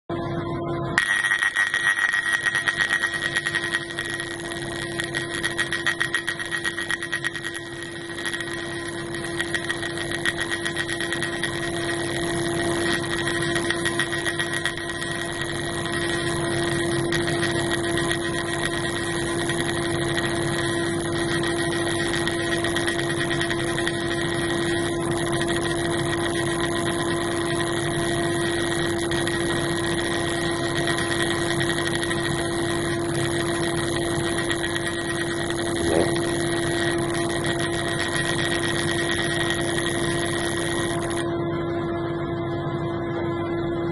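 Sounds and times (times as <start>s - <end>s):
steady laser buzz: 1.0s - 41.3s.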